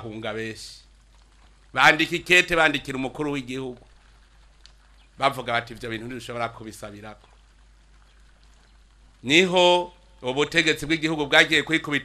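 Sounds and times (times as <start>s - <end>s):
man speaking: 0.0s - 0.8s, 1.8s - 3.8s, 5.2s - 7.2s, 9.2s - 12.0s
faint background hiss: 0.0s - 12.0s.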